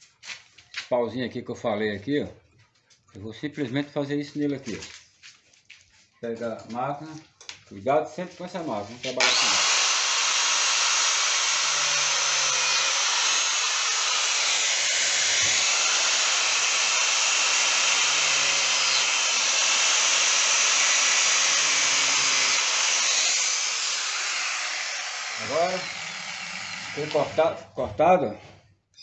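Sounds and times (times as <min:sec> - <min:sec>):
angle grinder cutting: 0:09.0 - 0:27.6.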